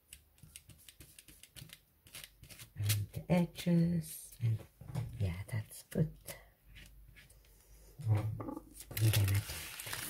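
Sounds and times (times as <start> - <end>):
paper rustling: 8.8 - 10.0.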